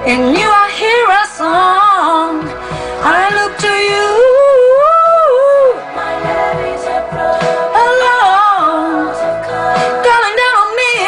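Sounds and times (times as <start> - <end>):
soft backing music: 0.0 - 11.0.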